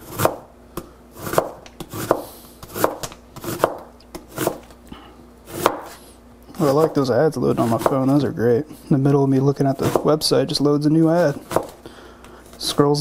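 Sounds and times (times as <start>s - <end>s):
knife slicing onion on board: 0.0s - 4.7s, 5.5s - 6.0s, 6.6s - 7.0s, 7.6s - 8.3s, 9.4s - 10.3s, 11.0s - 11.8s.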